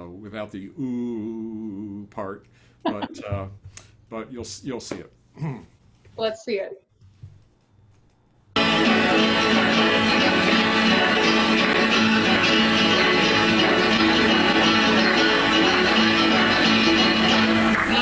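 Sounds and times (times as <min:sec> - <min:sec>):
folk band playing live: 0:08.7 - 0:17.8.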